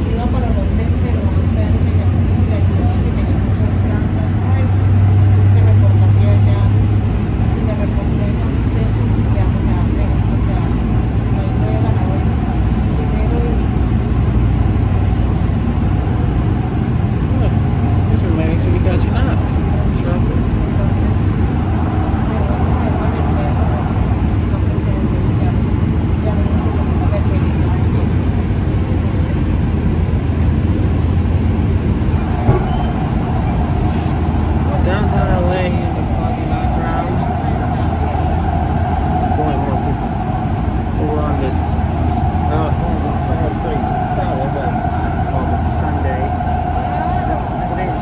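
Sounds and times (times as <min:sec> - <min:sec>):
steady hum: 0:00.0 - 0:48.0
train wheels rumbling: 0:00.0 - 0:48.0.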